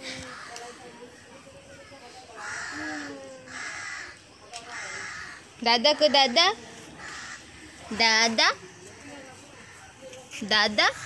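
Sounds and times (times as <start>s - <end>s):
crow cawing: 0.2s - 0.8s, 2.4s - 7.8s.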